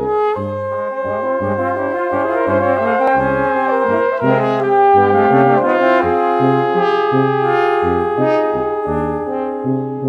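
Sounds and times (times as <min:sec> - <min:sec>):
brass ensemble playing: 0:00.0 - 0:10.0
held brass chords: 0:00.0 - 0:10.0
low brass bass line: 0:00.0 - 0:10.0.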